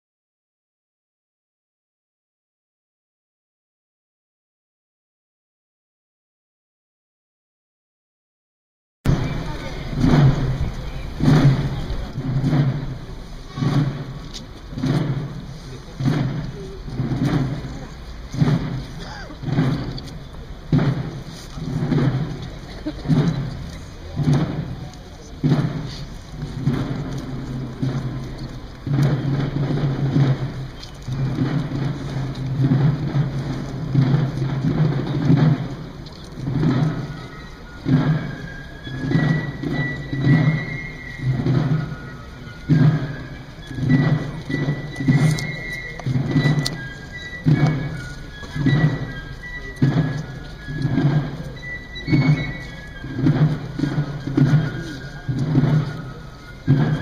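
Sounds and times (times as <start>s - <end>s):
murmuring crowd: 9.1s - 57.0s
slow processional drum beats: 9.1s - 57.0s.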